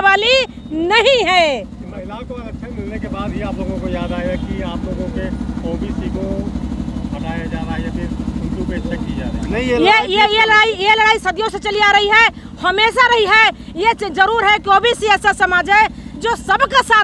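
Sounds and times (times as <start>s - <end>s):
engine idling: 0.0s - 17.0s.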